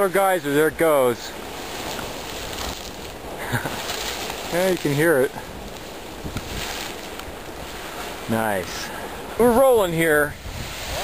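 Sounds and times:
geyser rushing steam and water: 0.0 - 11.0.

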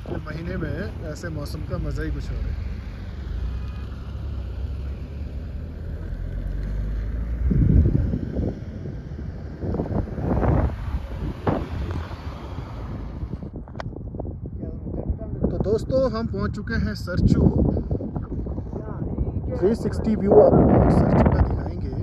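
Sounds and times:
vehicle engine and road rumble: 0.0 - 22.0
wind buffeting microphone: 0.0 - 22.0.

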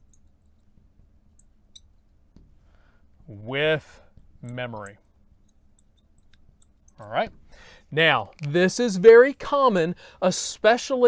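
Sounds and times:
marker squeaking on glass: 0.0 - 2.2, 3.2 - 7.4.

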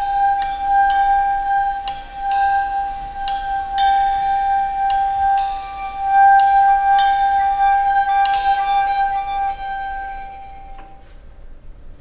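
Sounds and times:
struck ringing tones: 0.0 - 11.0
steady high held note: 0.0 - 11.6.

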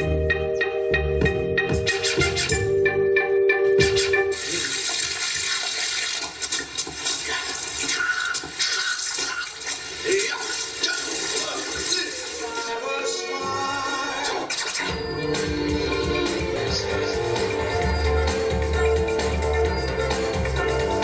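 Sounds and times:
music: 0.0 - 4.5, 11.7 - 21.0.

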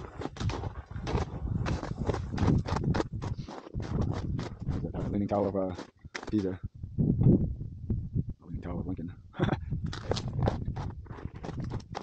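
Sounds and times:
footsteps crunching on snow: 0.0 - 6.6.

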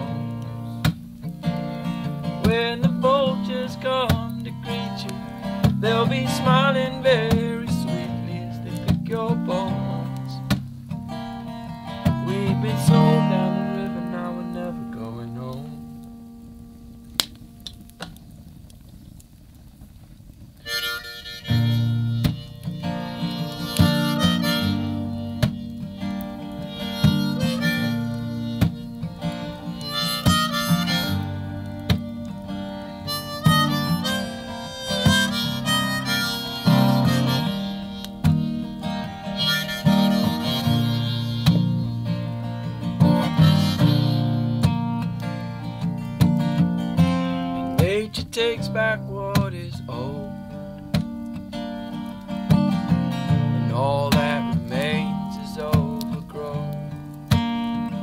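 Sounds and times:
acoustic guitar strumming: 0.0 - 18.5, 20.6 - 58.0
harmonica bending notes: 20.6 - 47.8.

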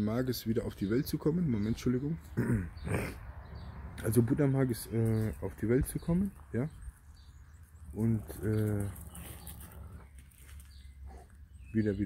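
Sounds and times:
man clearing his throat: 2.2 - 3.2.

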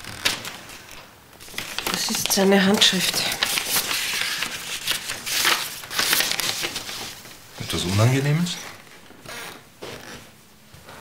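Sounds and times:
paper rustling and crinkling: 0.0 - 8.8.

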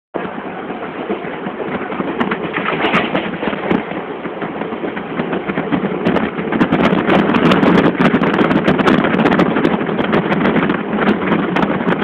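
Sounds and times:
train wheels rumbling on rails: 0.2 - 12.0
clatter of clicks and knocks: 1.7 - 4.0.

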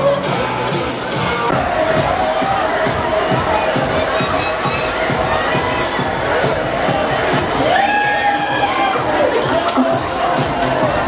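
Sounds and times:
crowd shouting and screaming: 0.0 - 11.0
loud ride music with beat: 0.0 - 11.0.

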